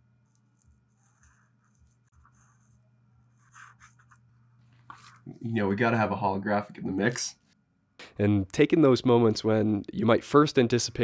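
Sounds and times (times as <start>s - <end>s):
low steady hum: 0.0s - 11.0s
marker scratching on paper: 0.7s - 4.2s.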